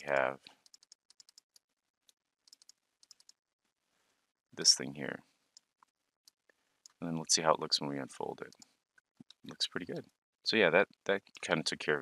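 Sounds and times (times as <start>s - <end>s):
computer keyboard and mouse clicking: 0.0s - 1.4s, 2.5s - 3.4s.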